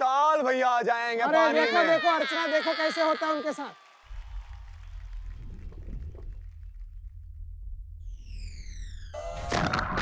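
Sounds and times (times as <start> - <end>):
low bass drone: 4.6 - 10.0
falling whistle-like sweep: 8.0 - 9.7.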